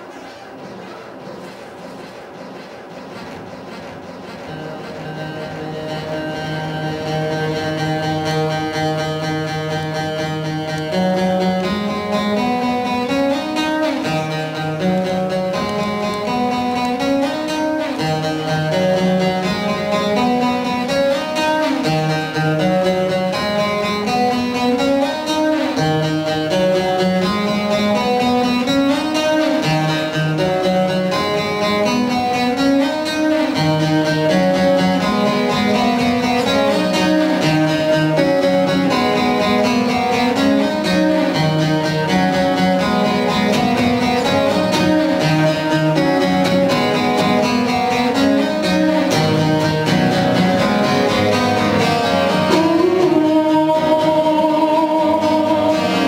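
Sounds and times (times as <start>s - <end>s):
looped acoustic guitar: 0.0s - 56.0s.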